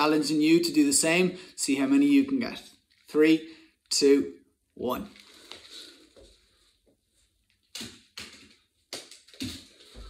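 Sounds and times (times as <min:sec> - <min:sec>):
rustling and shuffling on hard floor: 0:05.1 - 0:10.0.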